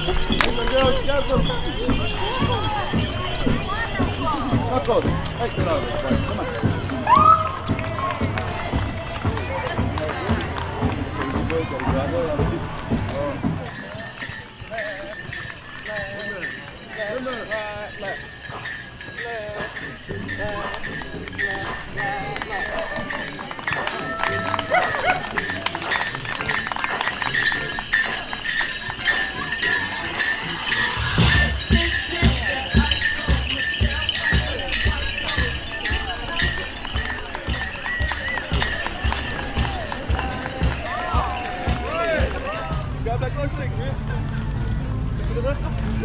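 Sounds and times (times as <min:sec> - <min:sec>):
hooves clopping on asphalt: 0:00.0 - 0:43.0
steady drum beat: 0:00.0 - 0:43.1
bells jingling on dancers' regalia: 0:00.0 - 0:43.2
people talking: 0:00.0 - 0:46.0.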